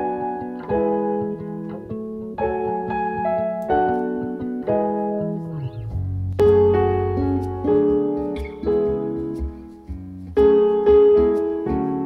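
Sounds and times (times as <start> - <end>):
piano chords through loudspeaker: 0.0 - 12.0.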